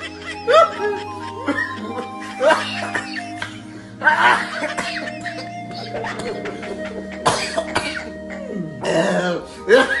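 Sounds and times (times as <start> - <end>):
music with held tones: 0.0 - 10.0.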